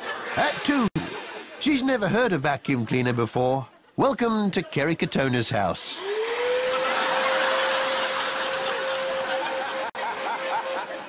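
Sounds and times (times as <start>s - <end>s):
vacuum cleaner running: 6.0s - 11.0s.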